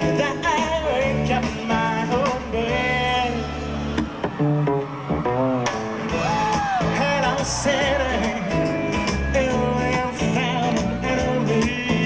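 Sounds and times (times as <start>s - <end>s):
man singing lead vocal: 0.0s - 3.8s, 6.5s - 12.0s
live band playing: 0.0s - 12.0s.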